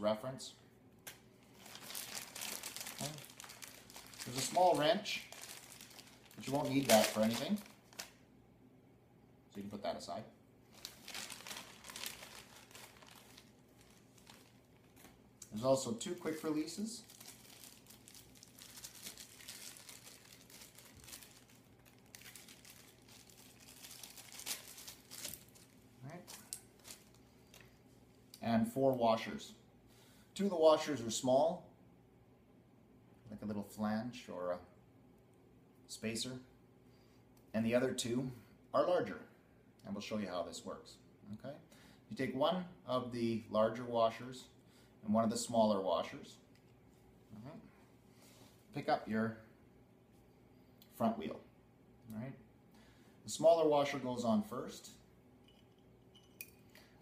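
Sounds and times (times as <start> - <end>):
plastic packaging crinkling: 1.5 - 8.2, 10.7 - 27.8.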